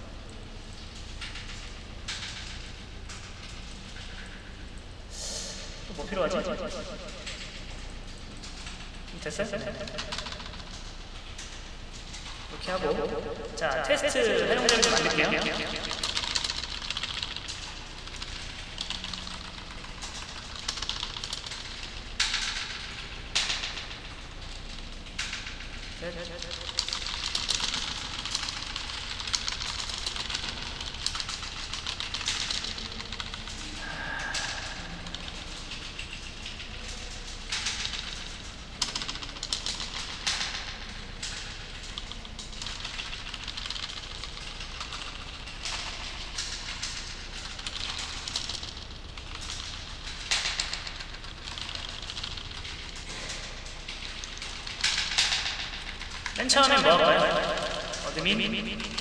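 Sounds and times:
computer keyboard typing: 0:05.5 - 0:59.0.

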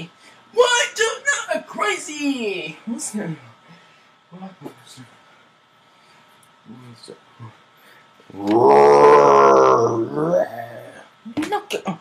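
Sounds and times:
loud drawn-out growl: 0:08.3 - 0:11.0.

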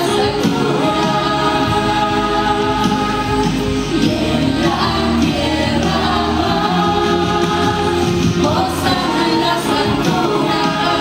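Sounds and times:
musical accompaniment: 0:00.0 - 0:11.0
woman singing worship song: 0:00.0 - 0:11.0.

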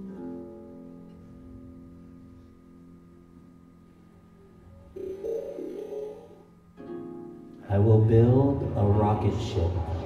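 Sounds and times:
wavering pitched tone: 0:04.7 - 0:06.5.

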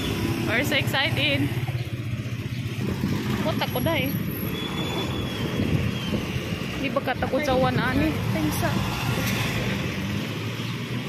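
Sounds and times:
traffic engines rumbling: 0:00.0 - 0:11.0.

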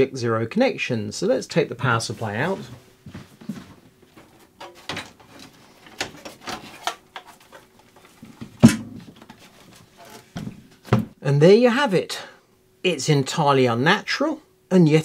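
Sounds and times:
clicks and knocks of handling: 0:04.2 - 0:11.1.

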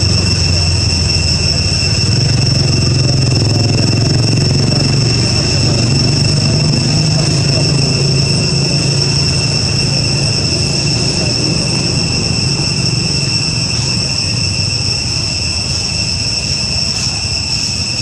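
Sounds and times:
low rumble: 0:00.0 - 0:15.7
high-pitched insect drone: 0:00.0 - 0:18.0.

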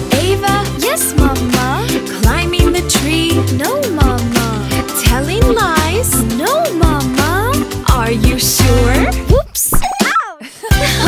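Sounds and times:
backing music: 0:00.0 - 0:09.6, 0:10.6 - 0:11.0.

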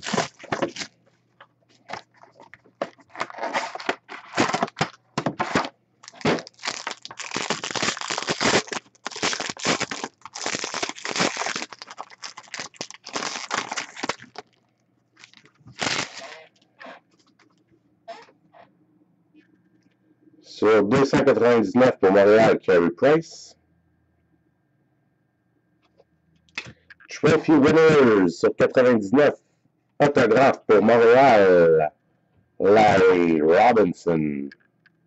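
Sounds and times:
foil wrapper crinkling and tearing: 0:00.0 - 0:01.0, 0:06.0 - 0:16.4.

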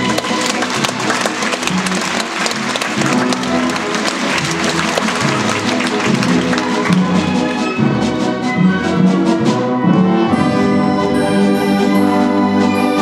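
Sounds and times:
audience applause: 0:00.0 - 0:07.9
orchestra playing fast ballet music: 0:00.0 - 0:13.0.

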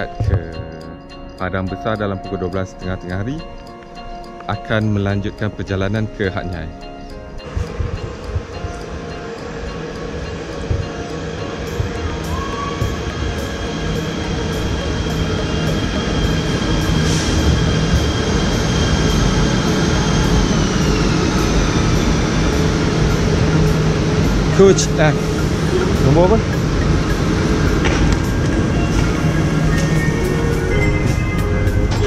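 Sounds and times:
train high whine: 0:00.0 - 0:32.0
train rumble: 0:04.2 - 0:32.0.

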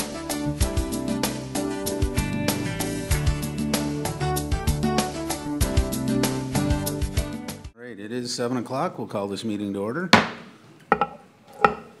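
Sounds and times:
wooden gavel striking: 0:10.2 - 0:12.0.

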